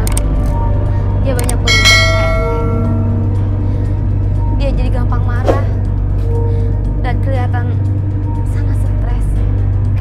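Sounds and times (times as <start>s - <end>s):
low background music drone: 0.0s - 10.0s
bright bell chime: 1.7s - 3.4s.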